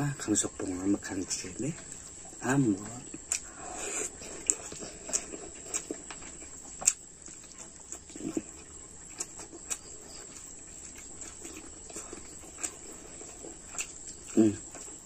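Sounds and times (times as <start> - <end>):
wet chewing and lip smacks: 1.6 - 15.0
low vocal hum: 14.3 - 14.9.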